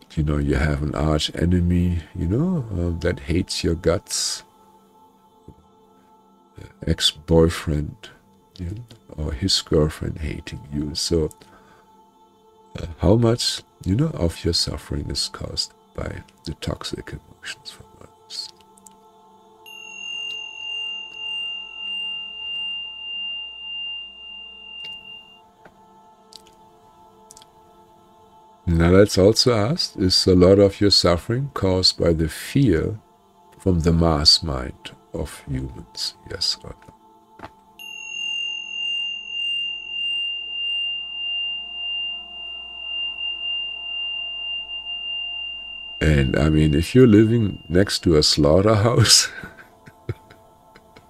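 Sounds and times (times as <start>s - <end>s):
soft background music drone: 0.0s - 51.0s
high pure ringing tone: 19.5s - 25.6s, 37.8s - 50.2s.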